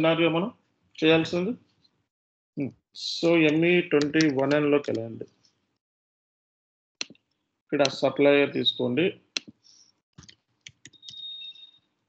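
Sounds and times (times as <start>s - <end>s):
computer mouse clicks: 3.5s - 5.0s, 10.2s - 11.3s.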